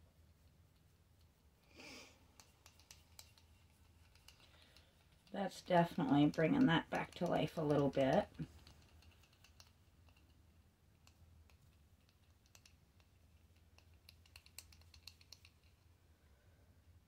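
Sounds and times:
paintbrush dabbing ticks: 0:00.0 - 0:15.9
low steady hum: 0:00.0 - 0:17.0.

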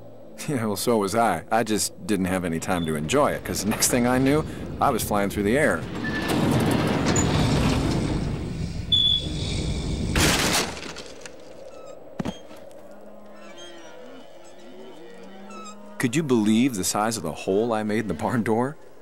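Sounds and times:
wood breaking crash: 0:10.1 - 0:11.6
soft music: 0:12.0 - 0:19.0.

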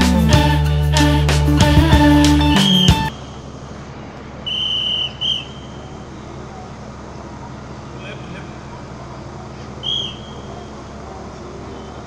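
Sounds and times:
intro music: 0:00.0 - 0:03.1
outdoor background noise: 0:02.8 - 0:12.0
coach's whistle blasts: 0:04.4 - 0:05.9, 0:09.8 - 0:10.5.

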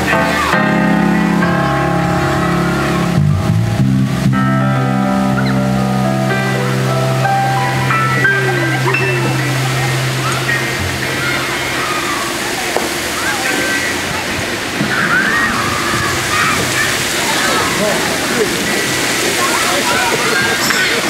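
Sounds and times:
live band sustained chord: 0:00.0 - 0:14.8
crowd voices: 0:00.0 - 0:21.0.

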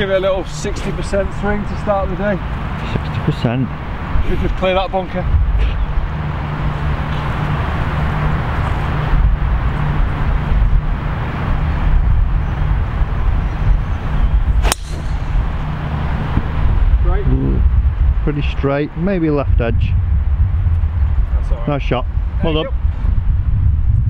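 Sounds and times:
wind noise on microphone: 0:02.6 - 0:24.0
golf club striking ball: 0:14.6 - 0:16.5.

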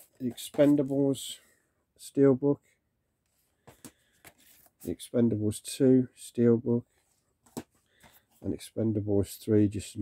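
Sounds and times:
man's voice: 0:04.8 - 0:06.9, 0:08.4 - 0:10.0.

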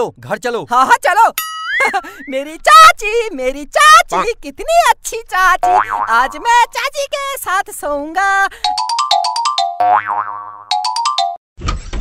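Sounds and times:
springy boing sound effect: 0:05.6 - 0:06.4, 0:09.8 - 0:10.7.

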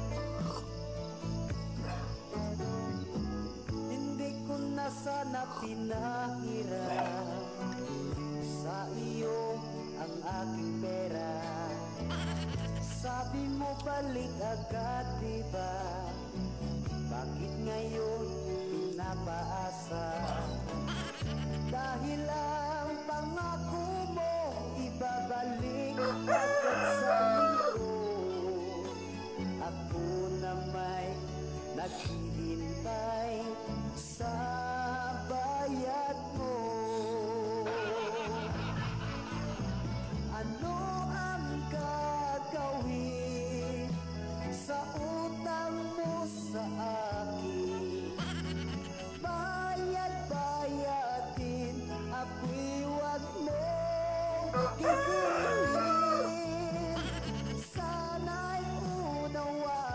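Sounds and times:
background music: 0:00.0 - 0:59.9
rooster crowing: 0:25.9 - 0:28.1, 0:54.4 - 0:57.5.

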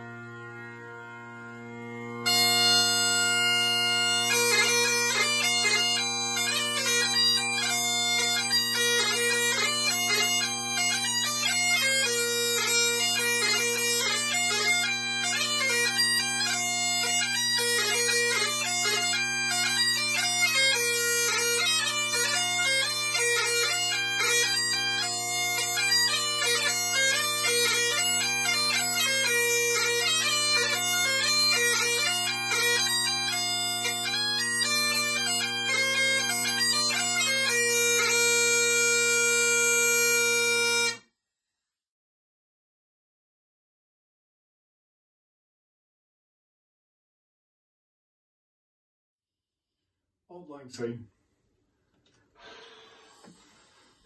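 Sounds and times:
bagpipes playing quick tune: 0:00.0 - 0:41.0.

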